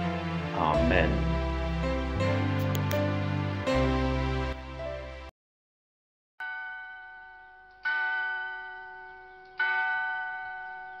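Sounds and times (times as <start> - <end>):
bell struck and ringing: 6.4 - 11.0.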